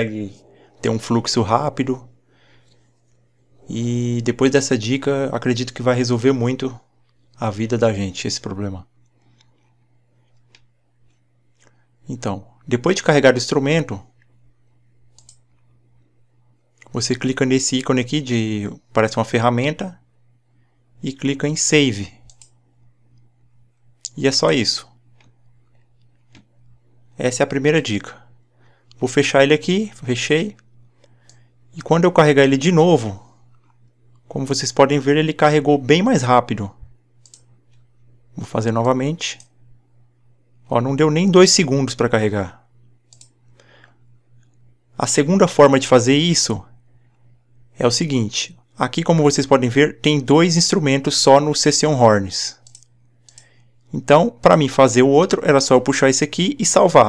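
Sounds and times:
steady low hum: 0:00.0 - 0:57.0
computer mouse clicks: 0:09.0 - 0:11.8, 0:15.1 - 0:15.8, 0:22.2 - 0:23.3, 0:25.1 - 0:26.7, 0:30.5 - 0:31.5, 0:37.2 - 0:37.9, 0:43.1 - 0:44.6, 0:52.6 - 0:53.7.

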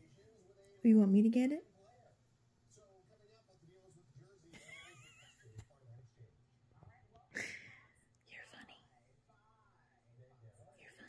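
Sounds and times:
person whispering: 0:08.3 - 0:09.0, 0:10.8 - 0:11.0.

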